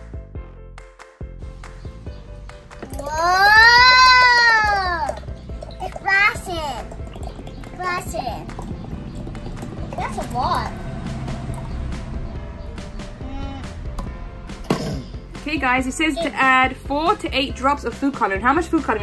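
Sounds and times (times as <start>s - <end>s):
child's long wordless exclamation: 3.0s - 5.2s.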